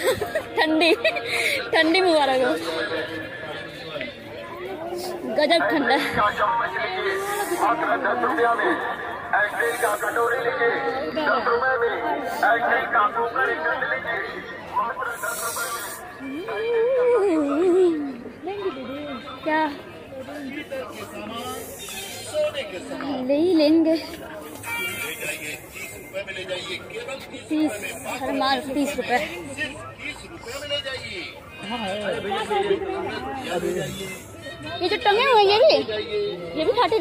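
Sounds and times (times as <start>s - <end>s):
people chattering: 0.0s - 37.0s.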